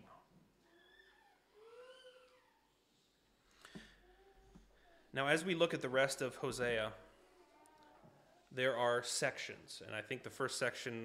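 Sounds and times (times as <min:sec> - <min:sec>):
faint high-pitched vocal calls: 0:00.6 - 0:03.0.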